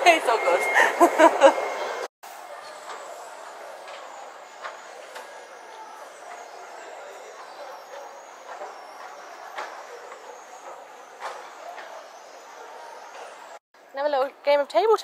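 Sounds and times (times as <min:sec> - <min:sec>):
distant traffic: 0:00.0 - 0:14.7
faint far-off voices: 0:02.3 - 0:13.6.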